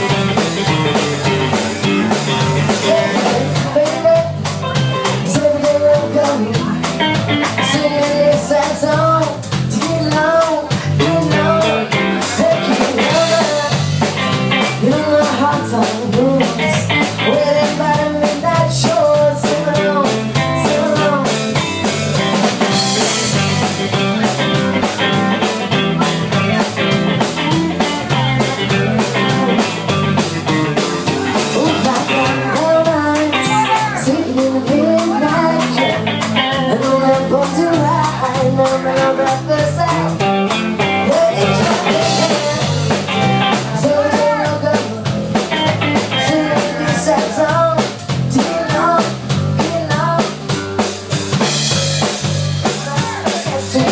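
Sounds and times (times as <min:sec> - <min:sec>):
live rock band playing: 0:00.0 - 0:53.9.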